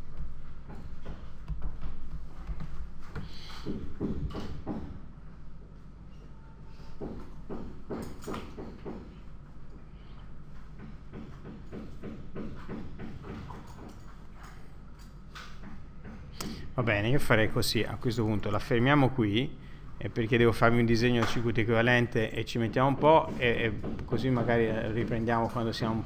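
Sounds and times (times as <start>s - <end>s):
steady low hum: 0.0s - 26.0s
knocking and banging: 0.6s - 5.0s, 7.0s - 9.2s, 10.7s - 14.2s, 22.5s - 26.0s.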